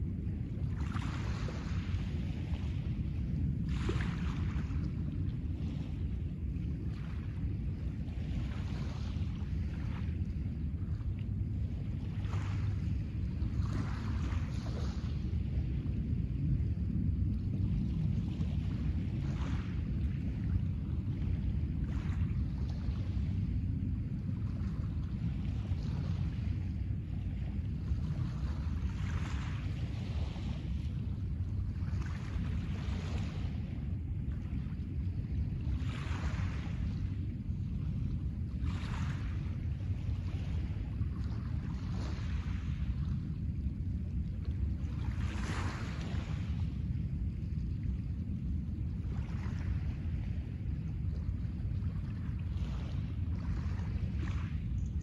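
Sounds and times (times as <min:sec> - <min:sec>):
wind noise on microphone: 0:00.0 - 0:55.0.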